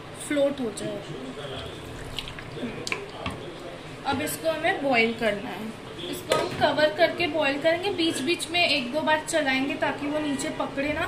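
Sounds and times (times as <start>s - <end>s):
water pouring into pot: 1.3s - 3.4s.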